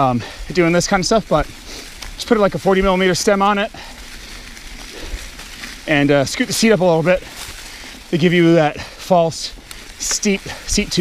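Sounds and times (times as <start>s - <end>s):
rider's voice: 0.0s - 1.6s, 2.2s - 3.9s, 5.8s - 7.4s, 8.1s - 11.0s
bike tyres rolling on dirt trail: 0.0s - 11.0s.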